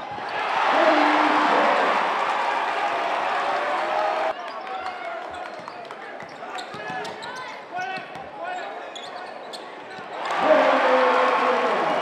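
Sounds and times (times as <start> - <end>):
crowd cheering: 0.0 - 6.0, 10.1 - 12.0.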